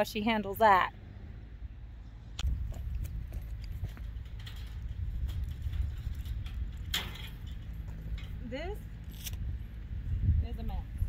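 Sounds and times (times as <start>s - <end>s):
microphone handling rumble: 2.4s - 8.7s.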